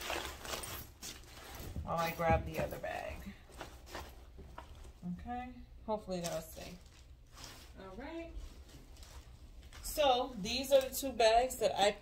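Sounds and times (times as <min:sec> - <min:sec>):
handbag rustling: 0:00.0 - 0:04.3.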